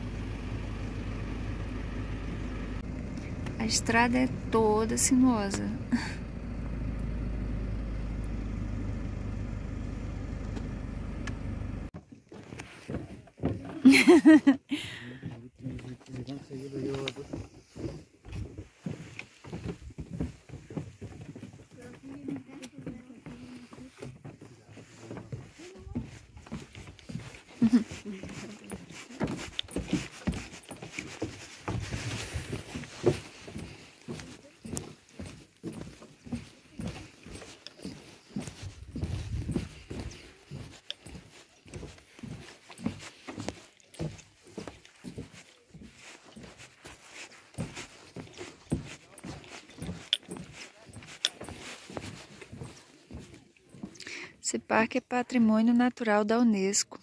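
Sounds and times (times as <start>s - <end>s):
footsteps on wooden boardwalk: 2.8s - 9.0s, 11.6s - 57.0s.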